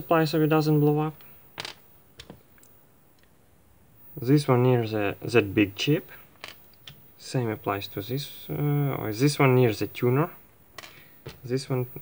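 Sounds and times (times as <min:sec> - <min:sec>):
capacitors clicking on desk: 0:01.6 - 0:02.7.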